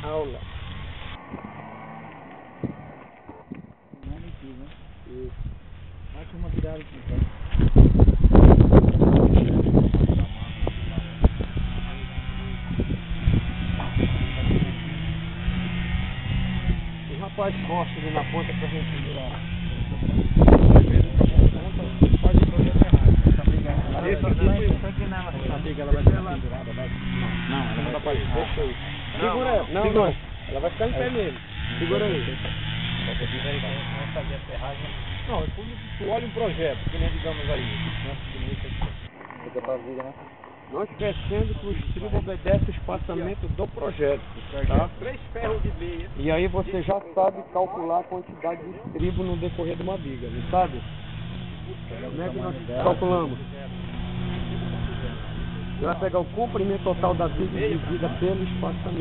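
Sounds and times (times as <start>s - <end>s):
motor humming: 0.0s - 39.5s, 49.0s - 59.0s
people talking indistinctly: 0.0s - 59.0s.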